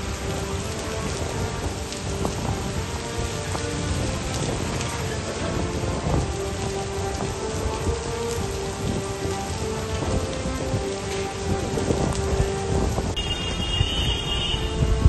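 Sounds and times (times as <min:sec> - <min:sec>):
heavy rain pouring on street: 0:00.0 - 0:15.0.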